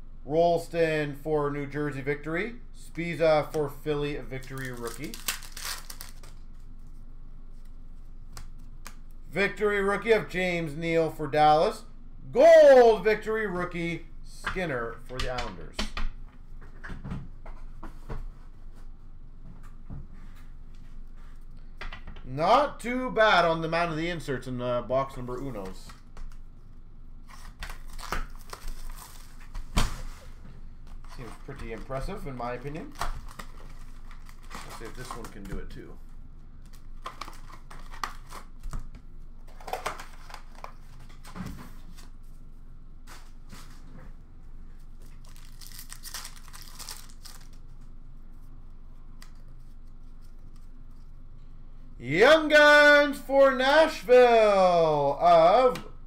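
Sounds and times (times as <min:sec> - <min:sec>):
foil wrappers crinkling and tearing: 0:04.3 - 0:06.8, 0:27.2 - 0:29.7, 0:30.9 - 0:35.5, 0:36.7 - 0:38.8, 0:45.0 - 0:47.7
trading cards tapped and rustled: 0:04.4 - 0:06.4, 0:30.8 - 0:35.8, 0:36.6 - 0:42.1.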